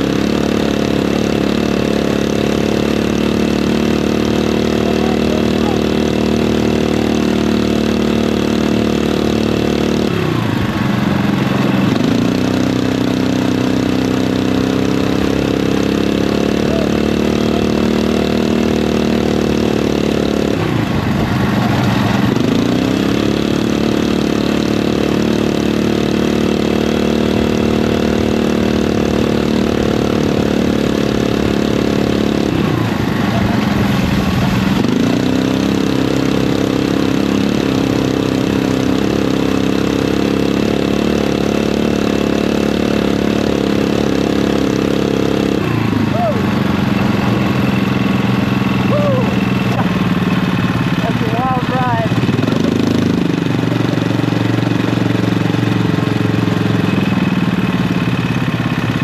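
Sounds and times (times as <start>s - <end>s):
kart engine revving: 0.0s - 59.0s.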